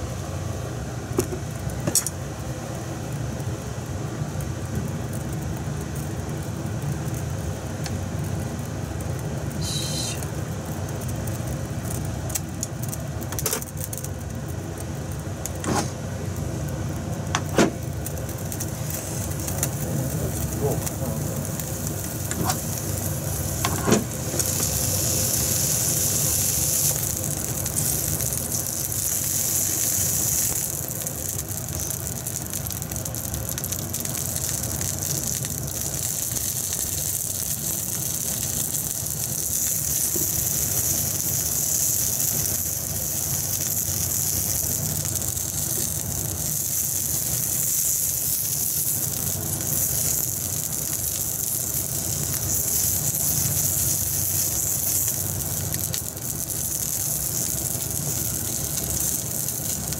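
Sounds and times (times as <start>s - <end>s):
sausages sizzling in oil: 0.0s - 59.9s
steady low hum: 0.0s - 59.9s.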